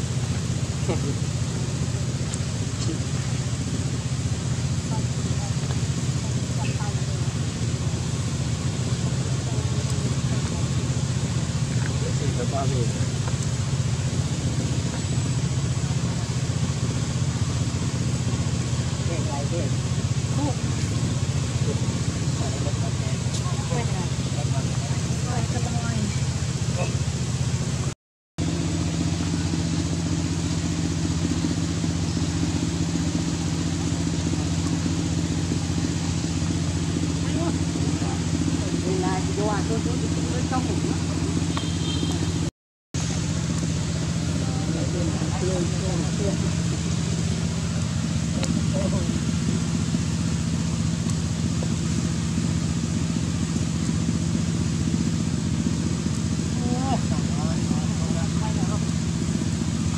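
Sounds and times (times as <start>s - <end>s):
motor running low drone: 0.0s - 59.9s.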